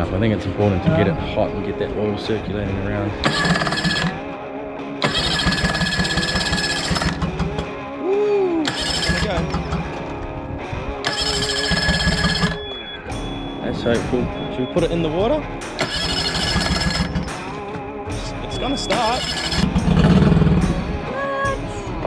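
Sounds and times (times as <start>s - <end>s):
background music: 0.0s - 22.0s
outboard motor starter cranking: 3.2s - 4.3s, 5.0s - 7.8s, 8.6s - 10.3s, 11.0s - 12.7s, 15.8s - 17.9s, 18.8s - 20.8s.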